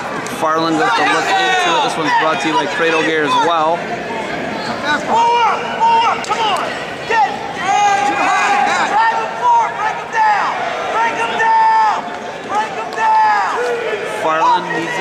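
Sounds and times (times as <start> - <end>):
crowd noise: 0.0 - 15.0
spectators yelling: 0.0 - 15.0.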